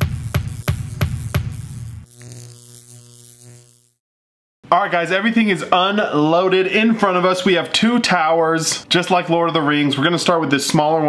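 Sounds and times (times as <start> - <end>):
pounding beat: 0.0 - 2.1.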